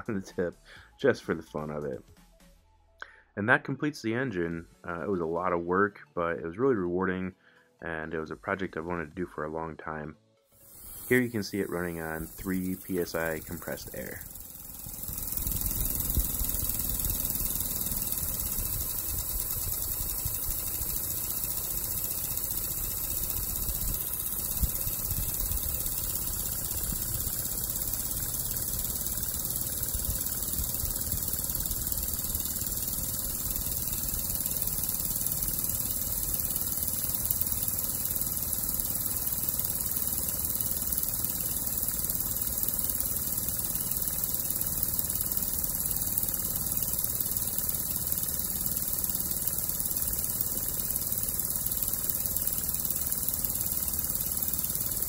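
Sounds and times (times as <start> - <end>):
model steam engine running: 10.6 - 55.0.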